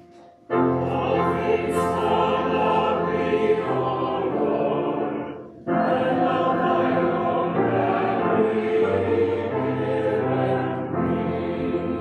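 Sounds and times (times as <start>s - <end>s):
church choir singing: 0.0s - 12.0s.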